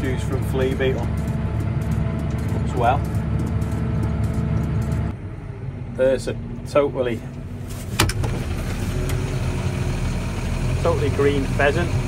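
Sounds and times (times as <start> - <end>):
sharp clicks: 0.0 - 5.2
vehicle engine idling: 0.0 - 12.0.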